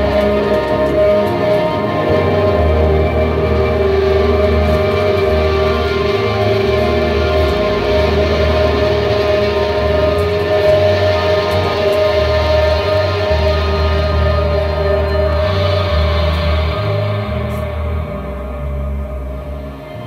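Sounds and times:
bass guitar low notes: 0:00.0 - 0:20.0
electric guitar sustained notes: 0:00.0 - 0:20.0.

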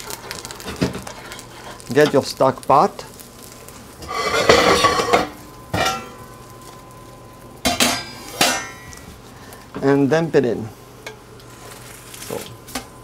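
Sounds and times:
metal pot scraping on grate: 0:04.0 - 0:06.1.

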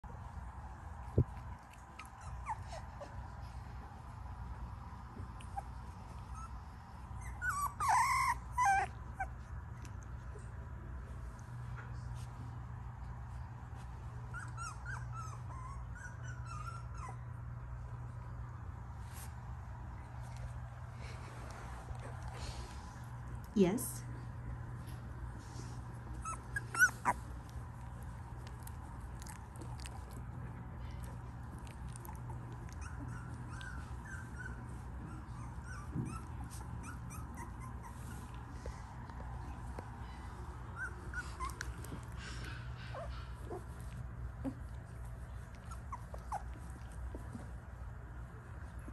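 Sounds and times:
puppies squeaking: 0:01.8 - 0:03.1, 0:05.5 - 0:09.4, 0:14.3 - 0:17.2, 0:26.1 - 0:27.4, 0:31.7 - 0:38.4, 0:40.7 - 0:42.1, 0:45.5 - 0:47.0.

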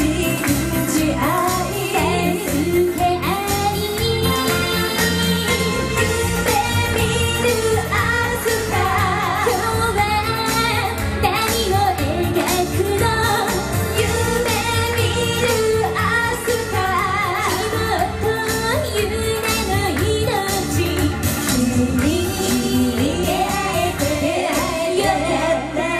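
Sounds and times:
accompanying music with steady beat: 0:00.0 - 0:25.9
women singing pop song: 0:00.0 - 0:25.9.

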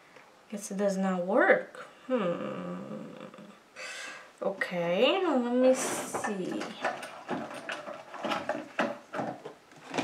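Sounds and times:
makeup cases clicking and knocking: 0:06.1 - 0:10.0.

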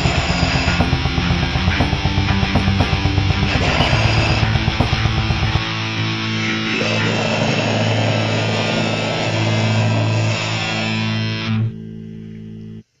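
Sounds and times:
distorted guitar and bass chord: 0:00.0 - 0:12.9.

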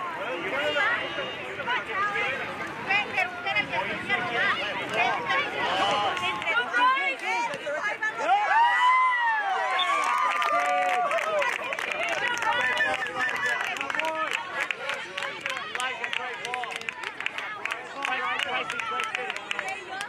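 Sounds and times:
spectators and players shouting: 0:00.0 - 0:20.0.

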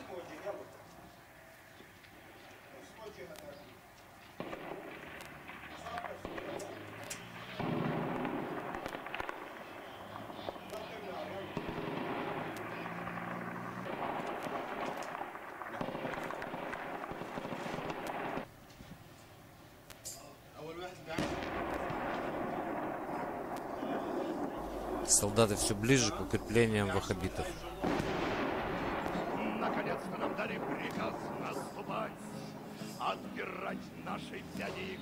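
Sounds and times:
voices: 0:00.0 - 0:18.5, 0:19.3 - 0:35.0
gunfire cracks: 0:04.4 - 0:18.5, 0:21.1 - 0:33.0.

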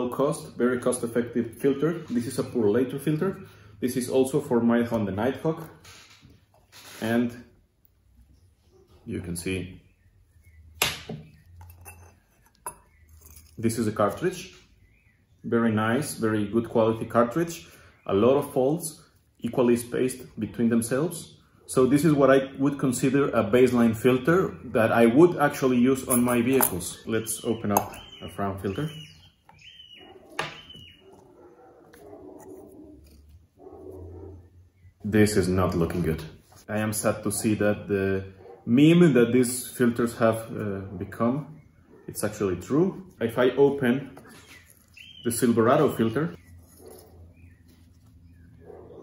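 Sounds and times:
short squeaks: 0:05.8 - 0:07.3
sharp metallic clink: 0:26.0 - 0:26.8.

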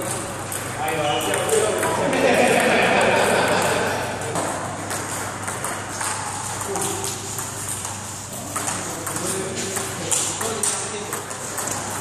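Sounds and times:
table tennis balls clicking: 0:00.0 - 0:12.0.

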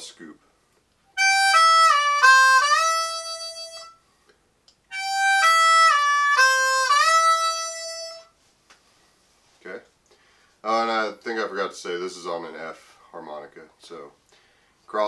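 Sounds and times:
harmonica lick with bent notes: 0:01.2 - 0:04.0, 0:04.9 - 0:08.4.

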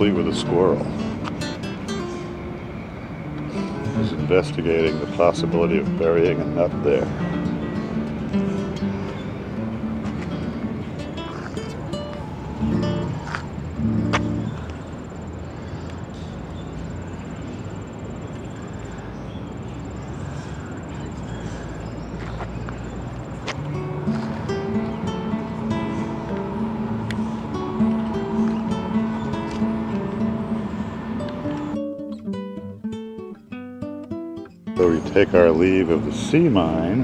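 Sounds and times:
plucked acoustic guitar music: 0:00.0 - 0:14.7, 0:23.5 - 0:37.0.

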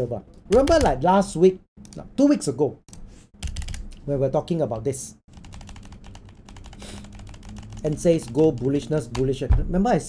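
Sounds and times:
keyboard typing: 0:00.5 - 0:01.0, 0:03.4 - 0:04.0, 0:05.3 - 0:09.5.

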